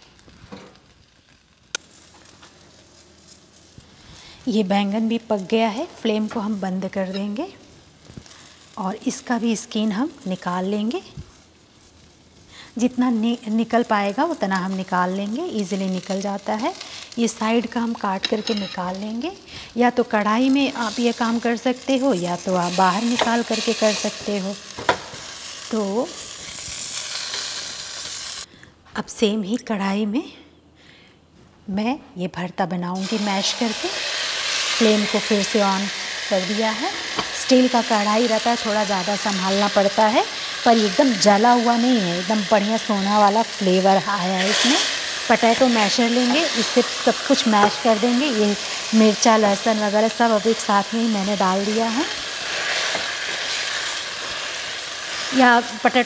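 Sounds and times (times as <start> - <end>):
vegetables sizzling in oil: 0.0 - 28.5, 33.0 - 56.0.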